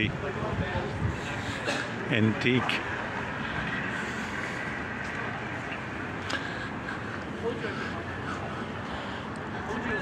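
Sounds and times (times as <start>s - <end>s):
passing cars rumbling: 0.0s - 10.0s.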